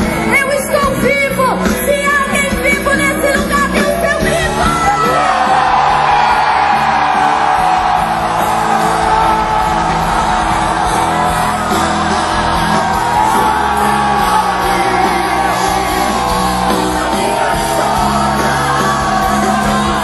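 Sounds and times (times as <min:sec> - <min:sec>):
live worship band with singing: 0:00.0 - 0:20.0
crowd yelling and whooping: 0:03.4 - 0:20.0.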